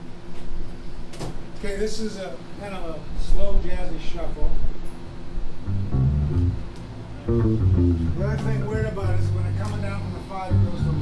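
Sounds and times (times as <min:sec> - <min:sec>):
electric bass low notes: 0:05.6 - 0:11.0
person talking: 0:08.1 - 0:11.0.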